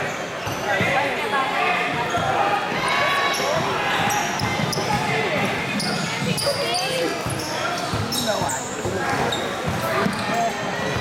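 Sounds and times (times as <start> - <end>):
sneakers squeaking: 0.0 - 1.1, 1.9 - 2.4, 3.1 - 11.0
spectators chattering: 0.0 - 11.0.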